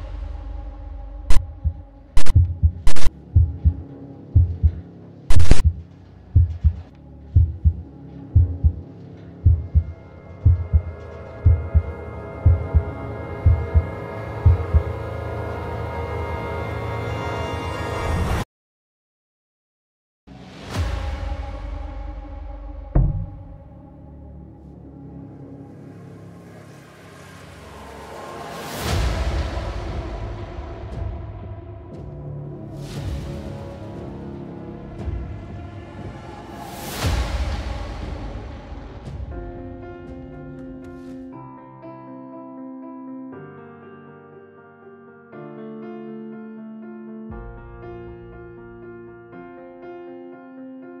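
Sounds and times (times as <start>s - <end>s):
heartbeat thumps: 1.3s - 3.8s, 4.4s - 5.8s, 6.4s - 8.8s, 9.4s - 14.9s, 23.0s - 23.5s
harsh static bursts: 2.9s - 3.1s, 5.3s - 5.6s.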